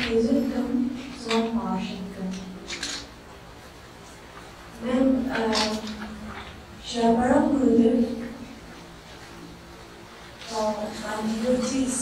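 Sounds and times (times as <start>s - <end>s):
woman speaking: 0.0s - 2.8s, 4.8s - 8.6s, 10.4s - 12.0s
faint room noise: 0.0s - 12.0s.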